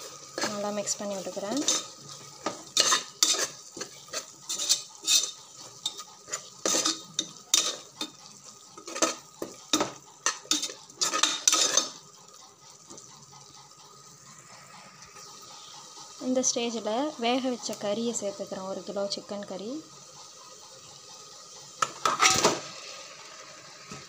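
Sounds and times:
metal spatula scraping a pot: 0:00.0 - 0:12.0, 0:22.0 - 0:22.6
light sizzle of frying: 0:00.0 - 0:24.0.

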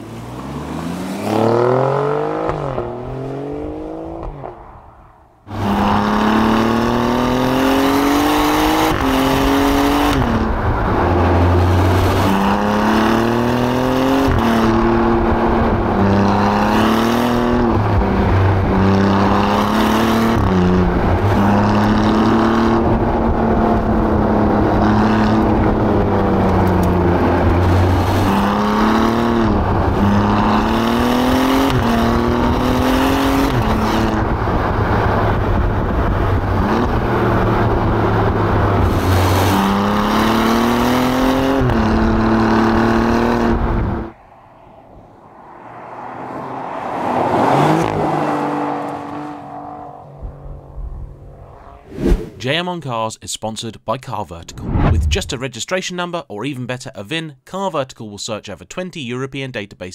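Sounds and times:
car engine accelerating: 0:00.0 - 0:04.8, 0:05.5 - 0:52.4, 0:54.5 - 0:55.4.

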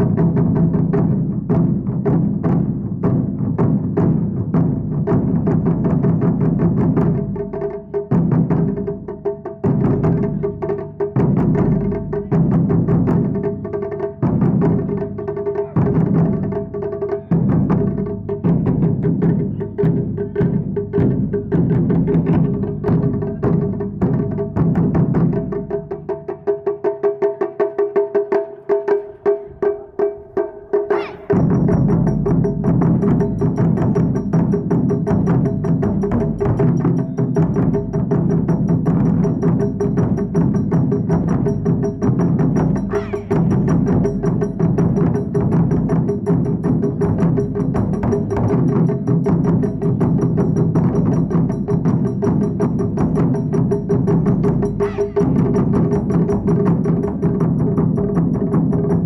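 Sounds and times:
taiko drumming: 0:00.0 - 0:59.0.

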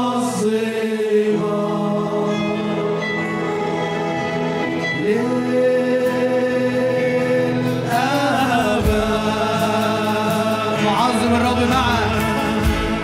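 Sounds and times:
man singing: 0:00.0 - 0:03.1, 0:04.8 - 0:13.0
keyboard and guitars: 0:00.0 - 0:13.0
drums and bass: 0:07.6 - 0:13.0.

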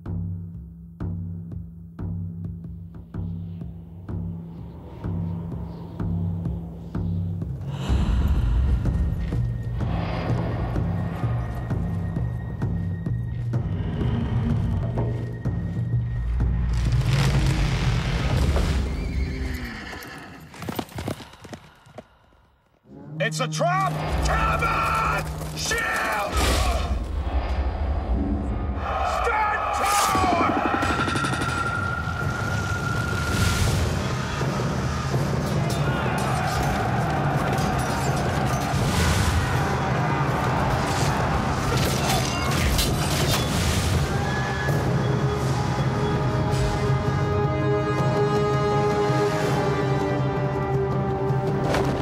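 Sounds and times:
dramatic trailer music: 0:00.0 - 0:19.2, 0:22.8 - 0:52.0
hoofbeats: 0:18.8 - 0:22.5
horse whinnying: 0:19.0 - 0:20.8
battle sound effects: 0:28.8 - 0:32.5.

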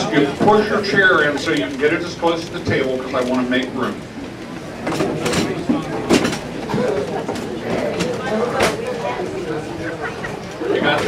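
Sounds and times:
crowd murmuring: 0:00.0 - 0:11.0
chairs scraping and knocking: 0:04.8 - 0:08.8.

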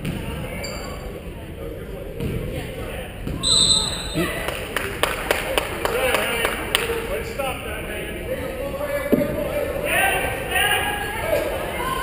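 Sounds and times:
gym chatter: 0:00.0 - 0:12.0
referee's whistle: 0:03.4 - 0:04.4.

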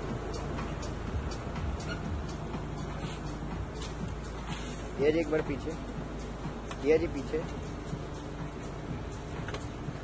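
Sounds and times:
music with ticking beat: 0:00.0 - 0:10.0
street noise: 0:00.0 - 0:10.0.

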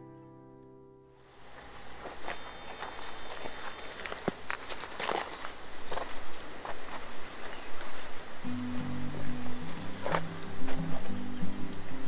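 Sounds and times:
footsteps on soil and grass: 0:01.3 - 0:11.7
background music: 0:08.5 - 0:12.0
low bass notes: 0:08.5 - 0:12.0.

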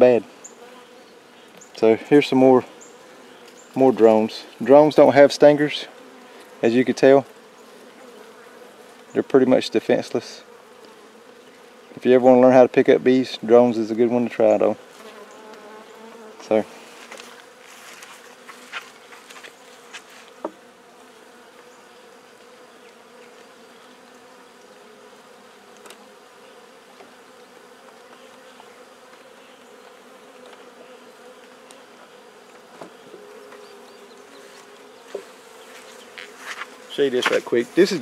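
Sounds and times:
bees buzzing: 0:00.0 - 0:38.0.

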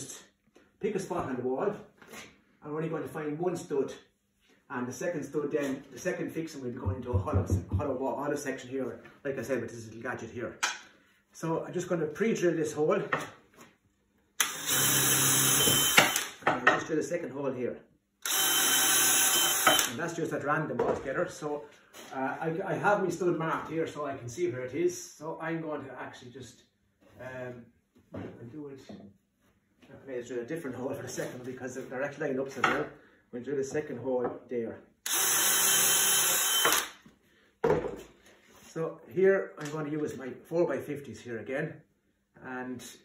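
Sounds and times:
short knock: 0:06.8 - 0:07.9
cordless drill boring into wood: 0:14.4 - 0:16.4, 0:18.2 - 0:20.0, 0:35.0 - 0:37.0.

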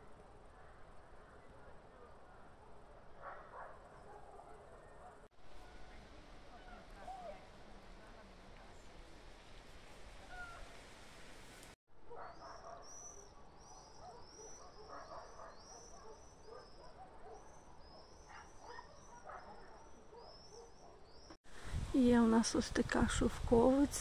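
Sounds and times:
faint outdoor ambience: 0:00.0 - 0:24.0
small birds chirping: 0:11.6 - 0:21.4.

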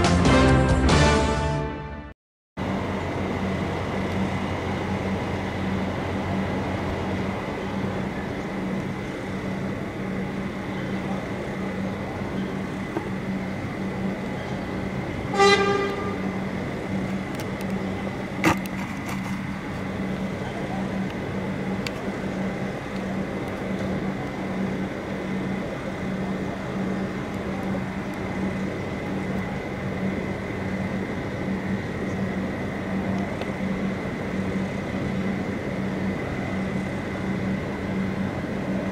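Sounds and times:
street noise: 0:00.0 - 0:38.9
low engine hum: 0:02.6 - 0:38.9
vehicle horn toot: 0:15.3 - 0:16.3.

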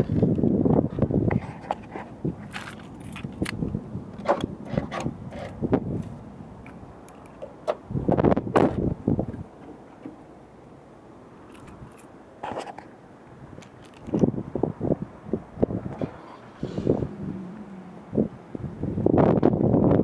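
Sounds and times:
clicks and knocks of handling: 0:01.3 - 0:07.8, 0:13.6 - 0:14.3.

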